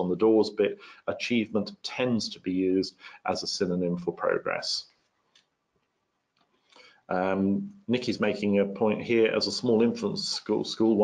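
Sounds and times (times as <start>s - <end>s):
person speaking: 0.0s - 4.8s, 7.1s - 11.0s.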